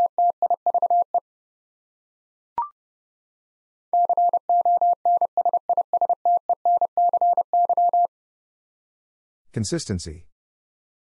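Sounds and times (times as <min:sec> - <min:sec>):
morse code beeps: 0:00.0 - 0:01.1, 0:04.0 - 0:08.1.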